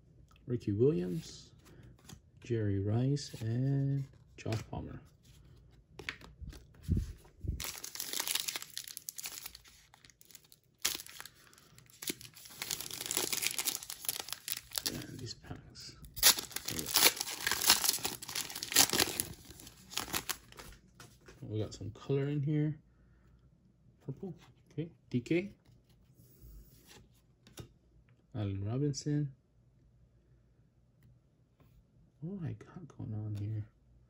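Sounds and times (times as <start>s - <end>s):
wrapper crinkling and tearing: 7.4s - 15.2s, 16.1s - 20.7s.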